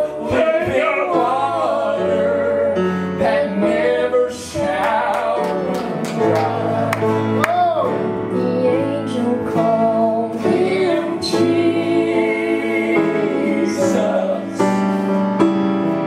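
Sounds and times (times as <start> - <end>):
acoustic guitars: 0.0 - 16.0
piano: 0.0 - 16.0
woman singing gospel: 8.3 - 14.5.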